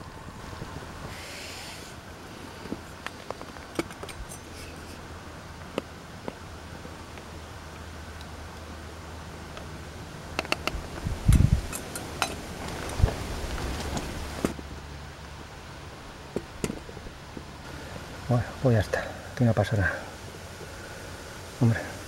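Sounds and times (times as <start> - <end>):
metallic clicks on a steel pot: 10.4 - 10.8.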